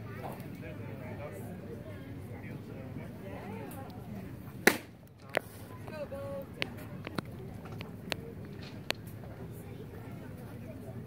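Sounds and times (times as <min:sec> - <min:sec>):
faint background chatter: 0:00.0 - 0:11.0
sharp smack: 0:04.7 - 0:04.9.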